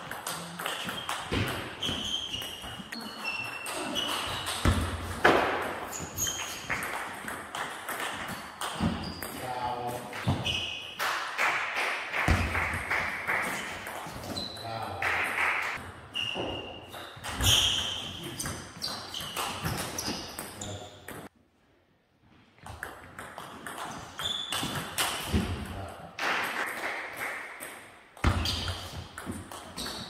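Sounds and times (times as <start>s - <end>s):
shoe squeaks: 0.6s - 7.0s, 8.2s - 11.0s, 13.5s - 14.8s, 16.1s - 21.1s, 24.0s - 24.9s, 28.2s - 29.1s, 29.7s - 30.0s.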